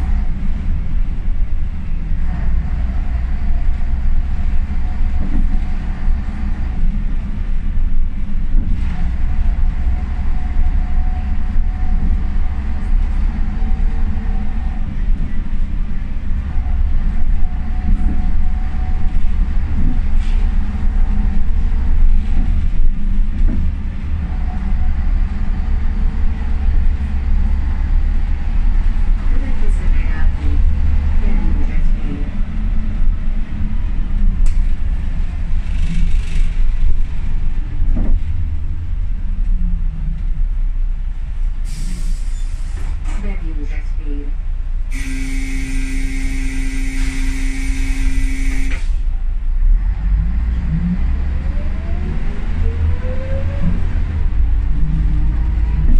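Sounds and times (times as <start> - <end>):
bus engine rumble: 0.0 - 55.9
gearbox whine: 44.9 - 48.8.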